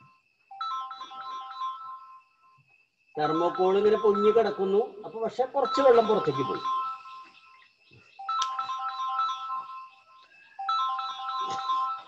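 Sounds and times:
phone ringtone melody: 0.0 - 2.6, 3.2 - 12.0.

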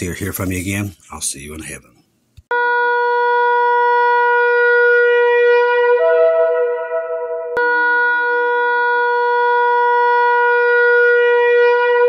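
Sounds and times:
shofar blast: 2.5 - 12.0.

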